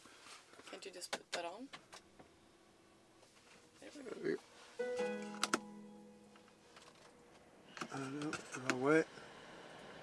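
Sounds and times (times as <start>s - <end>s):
guitar chord ringing: 4.7s - 6.8s.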